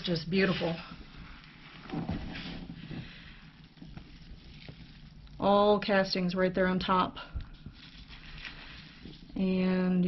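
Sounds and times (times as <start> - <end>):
hand digging in worm castings: 7.7 - 9.4.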